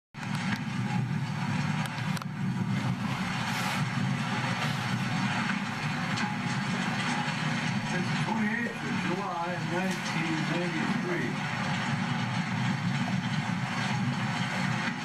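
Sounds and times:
swather mechanical drone: 0.2s - 15.0s.

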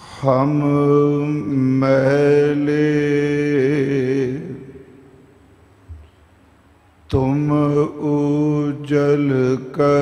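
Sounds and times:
man chanting in long held notes: 0.0s - 5.0s, 7.1s - 10.0s.

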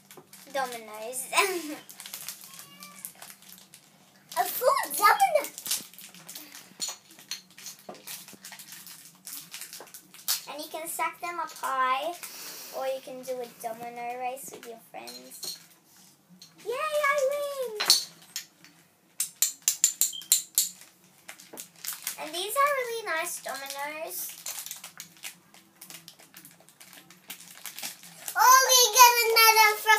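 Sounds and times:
plastic dominoes clacking: 1.5s - 10.7s, 19.2s - 22.6s, 23.3s - 29.9s.

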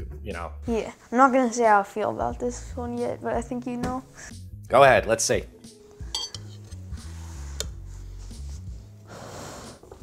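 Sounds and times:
fork clinking against bowl: 6.1s - 6.7s.

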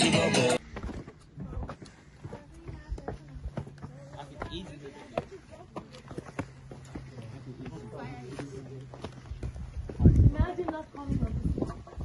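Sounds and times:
footsteps on concrete steps: 0.6s - 12.0s.

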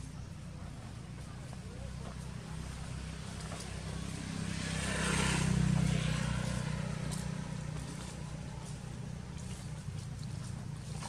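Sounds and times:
vehicle passing by: 0.0s - 11.0s.

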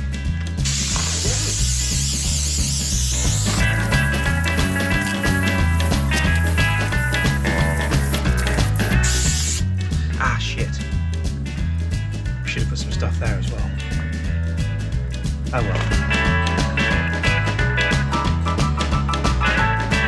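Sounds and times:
background music with beat: 0.0s - 20.0s
aerosol can hissing: 0.6s - 9.7s.

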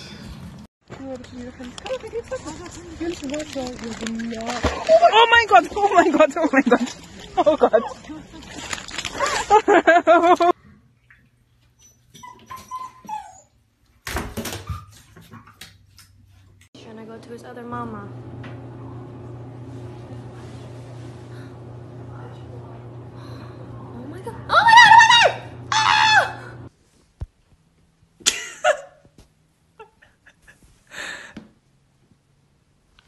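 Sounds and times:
puppy whimpering: 11.8s - 13.6s
low steady hum: 16.8s - 26.7s.

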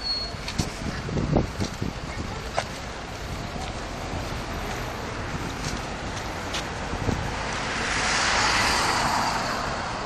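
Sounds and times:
town traffic: 0.0s - 10.0s
car passing: 3.2s - 10.0s.

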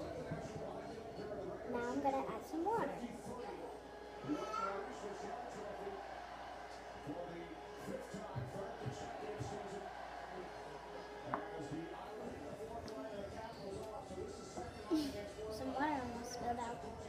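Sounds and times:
muffled voices murmuring: 0.0s - 17.0s.

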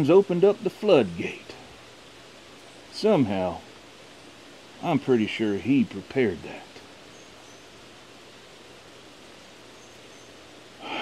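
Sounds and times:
heavy rain hissing: 0.0s - 11.0s
bird chirping: 6.7s - 7.8s, 9.6s - 11.0s
breathy sound: 10.8s - 11.0s.

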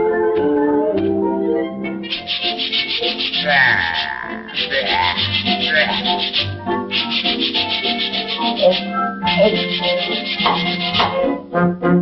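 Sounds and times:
orchestral music: 0.0s - 12.0s
brushes scrubbing hard: 2.1s - 11.2s.

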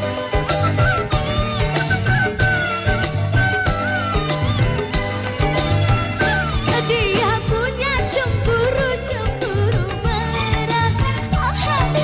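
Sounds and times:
bass: 0.0s - 12.0s
woman singing ornamented melody: 6.5s - 12.0s.

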